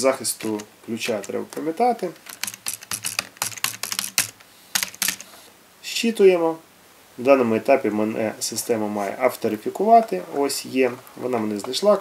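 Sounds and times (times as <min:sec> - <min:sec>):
keyboard typing: 0:00.3 - 0:05.4.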